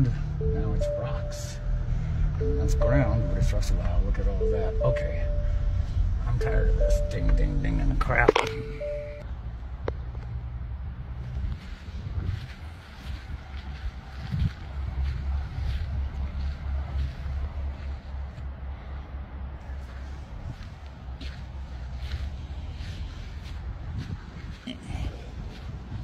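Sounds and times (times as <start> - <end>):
car door-open chime: 0.4 - 1.7, 2.4 - 9.2
wind buffeting microphone: 11.0 - 17.8, 19.8 - 26.0
footsteps on dirt and gravel: 11.2 - 18.5, 19.6 - 26.0.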